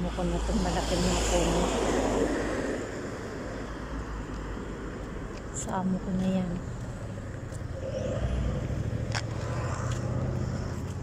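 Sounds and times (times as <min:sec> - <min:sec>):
car driving past: 0:07.7 - 0:11.0
motorcycle driving past: 0:07.7 - 0:11.0.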